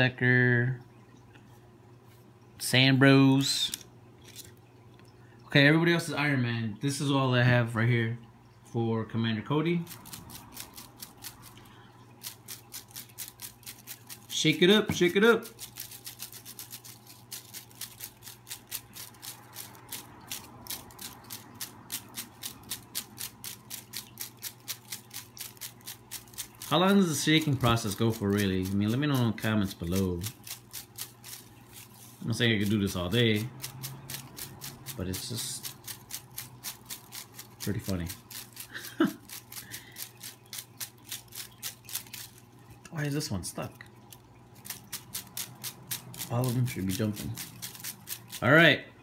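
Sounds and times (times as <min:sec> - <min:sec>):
paper slips rattling in basket: 0:09.8 - 0:11.6, 0:12.2 - 0:43.1, 0:44.1 - 0:48.6.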